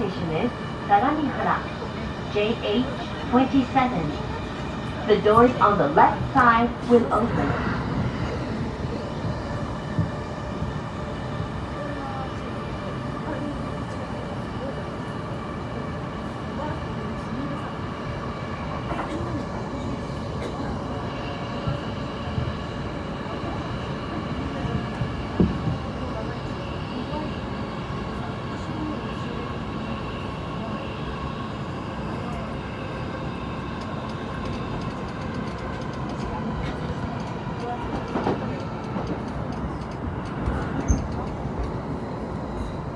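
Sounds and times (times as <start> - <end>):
train wheels rumbling on rail: 0.0 - 42.9
train whine: 0.0 - 42.9.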